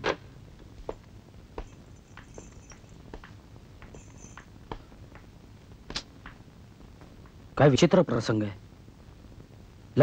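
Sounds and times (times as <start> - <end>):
low steady hum: 0.0 - 10.0
footsteps on hard floor: 0.8 - 6.4.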